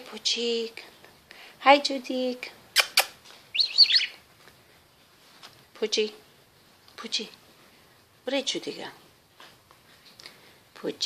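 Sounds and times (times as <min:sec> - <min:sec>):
parrot chirping: 0:02.7 - 0:04.2.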